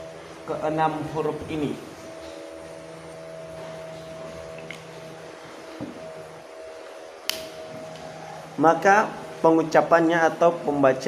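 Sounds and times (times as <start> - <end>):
background hum: 0.0 - 11.0
sharp click: 7.3 - 7.6.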